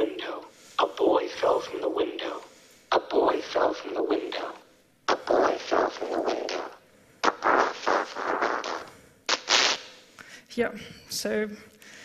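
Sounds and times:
hissing processed speech: 0.0 - 4.6
burst of hiss: 6.4 - 10.0.

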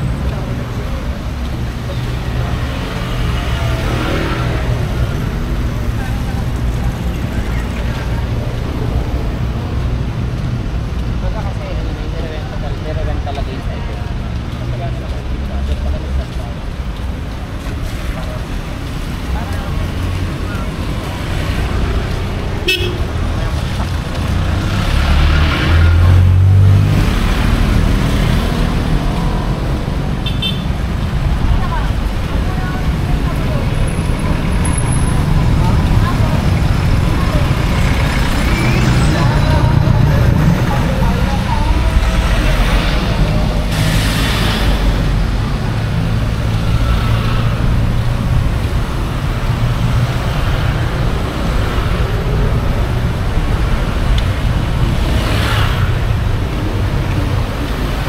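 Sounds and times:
motorcycle engines passing: 0.0 - 58.0
car horn: 22.6 - 23.1, 30.2 - 30.7.

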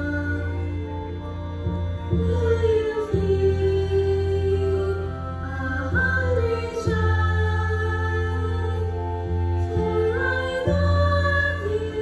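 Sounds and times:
instrumental music: 0.0 - 12.0
children singing: 2.2 - 12.0.

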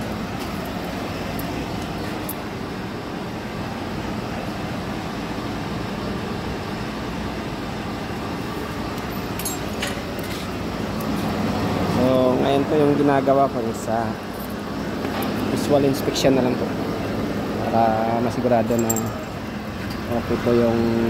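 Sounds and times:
man speaking: 17.6 - 19.3, 20.1 - 21.0.

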